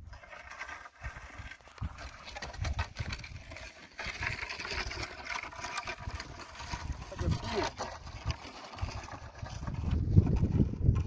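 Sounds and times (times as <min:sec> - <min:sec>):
wooden poles scraping on stony dirt: 0:00.0 - 0:11.0.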